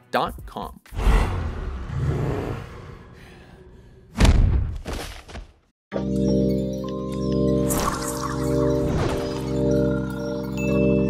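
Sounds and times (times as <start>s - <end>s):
loud punch impact: 4.2s - 4.9s.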